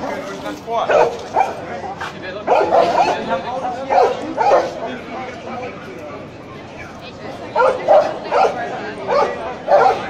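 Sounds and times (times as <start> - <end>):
dog barking sharply: 0.9 - 1.6, 2.5 - 3.2, 3.9 - 4.8, 7.6 - 10.0.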